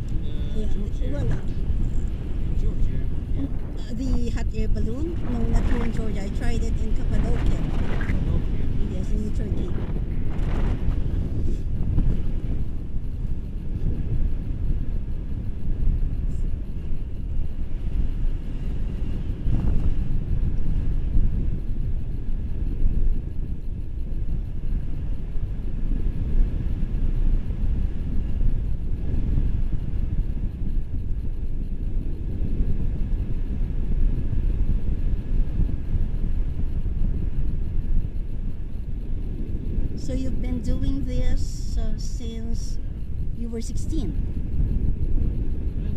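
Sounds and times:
wind buffeting microphone: 0.0s - 45.9s.

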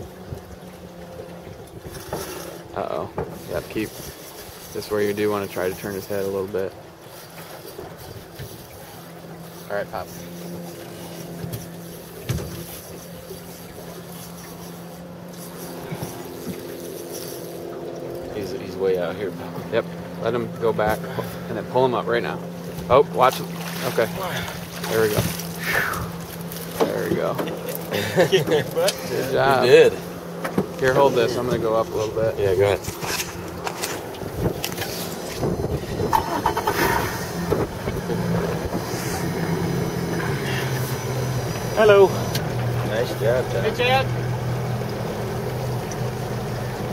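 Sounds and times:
boat motor humming: 0.0s - 46.9s.

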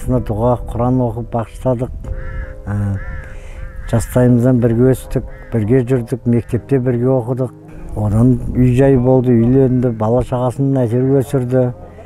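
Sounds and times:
bird calling: 2.1s - 4.6s, 5.2s - 6.9s
man saying eh: 2.7s - 3.0s, 8.0s - 11.4s.

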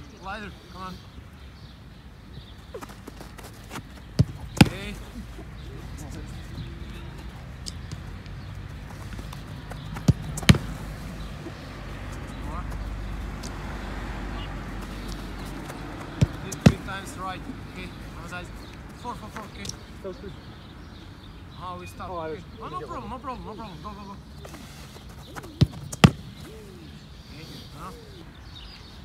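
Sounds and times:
football being kicked: 2.7s - 5.2s, 9.0s - 11.0s, 14.8s - 17.1s, 25.4s - 26.6s
ball smacking goalkeeper gloves: 3.7s - 5.2s, 9.0s - 11.2s, 14.8s - 17.1s, 25.3s - 26.6s.

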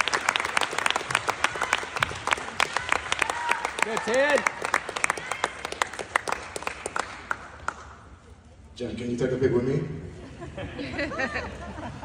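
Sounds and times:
crowd applauding: 0.0s - 8.0s.

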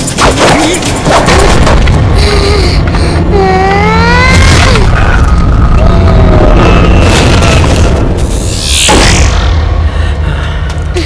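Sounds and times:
dramatic music: 0.0s - 11.0s
deep booming rumble: 3.9s - 11.0s.

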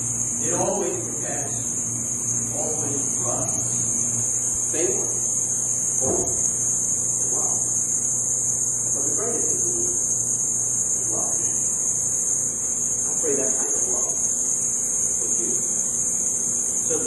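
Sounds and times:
low electrical hum: 0.0s - 17.0s
steady high hiss: 0.0s - 17.0s.

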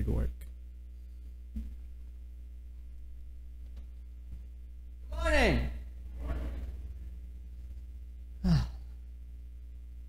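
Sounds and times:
steady low hum: 0.0s - 10.0s
person sighing: 8.4s - 9.0s.

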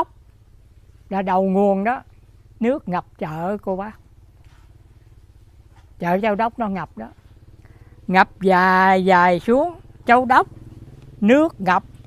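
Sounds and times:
small engine running: 0.0s - 12.0s.

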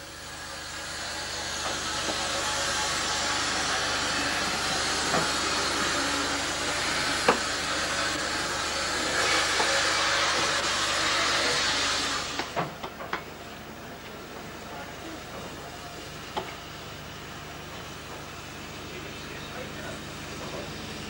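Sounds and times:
steam locomotive hissing: 0.0s - 21.0s.

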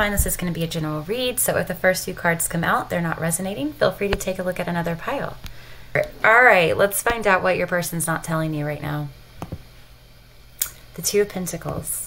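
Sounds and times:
faint steady low hum: 0.0s - 12.0s.

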